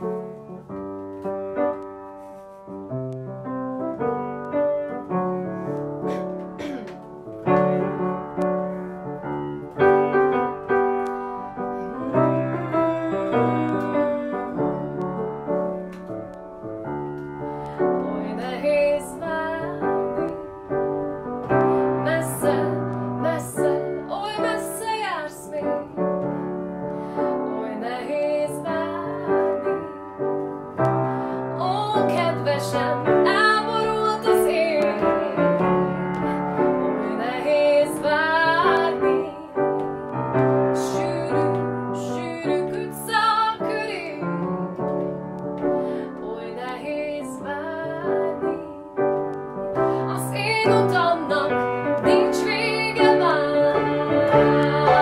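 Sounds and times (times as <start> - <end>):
grand piano playing: 0.0 - 55.0
woman singing: 11.5 - 15.9, 17.4 - 20.5, 21.6 - 26.2, 27.1 - 30.3, 31.4 - 44.7, 45.9 - 49.2, 49.8 - 55.0.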